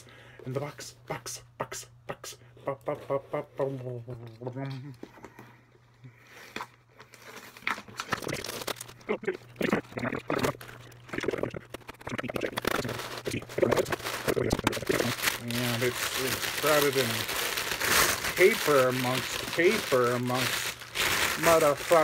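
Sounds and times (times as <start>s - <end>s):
cardboard and paper rustling: 11.7s - 22.0s.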